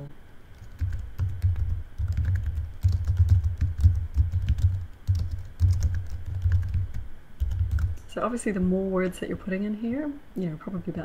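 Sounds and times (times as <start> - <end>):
computer keyboard typing: 0.5 - 8.1.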